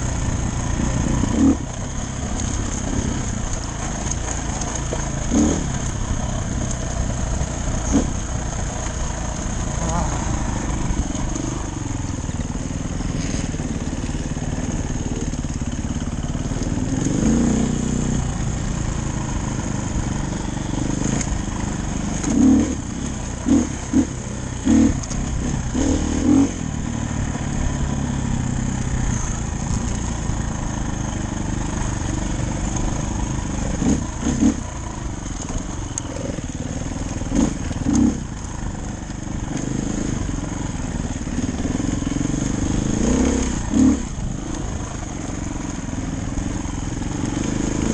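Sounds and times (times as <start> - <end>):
dirt bike engine revving: 0.0 - 47.9.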